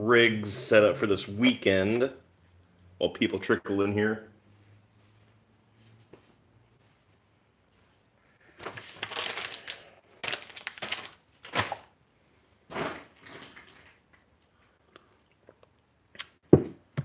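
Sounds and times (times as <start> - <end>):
rustling and crinkling: 4.6 - 11.9.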